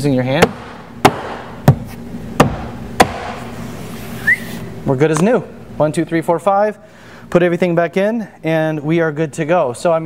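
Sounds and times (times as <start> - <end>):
hand striking plastic door panel: 2.4 - 3.4.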